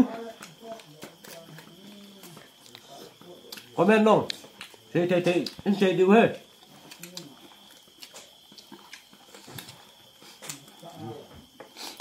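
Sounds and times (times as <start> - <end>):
chewing and lip smacking: 1.2 - 5.6, 6.4 - 10.8.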